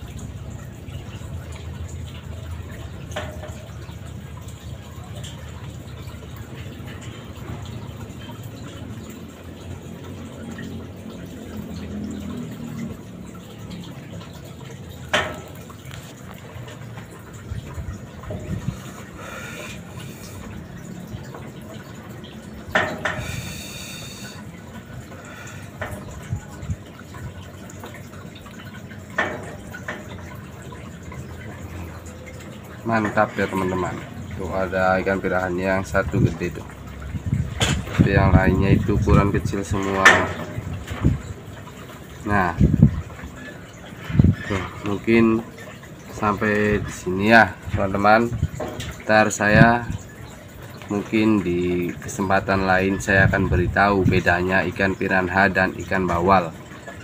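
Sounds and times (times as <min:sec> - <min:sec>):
trickle of falling water: 0:00.0 - 0:57.0.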